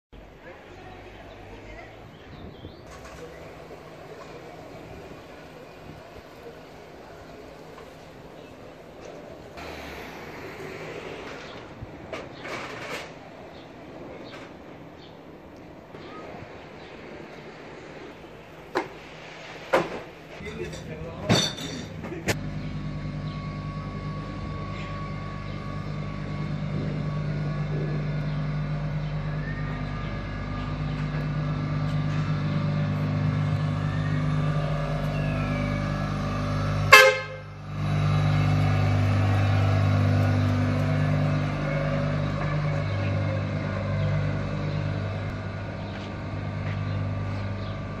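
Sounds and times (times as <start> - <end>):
low traffic engine hum: 0.2 - 48.0
vehicle horn toot: 36.4 - 38.3.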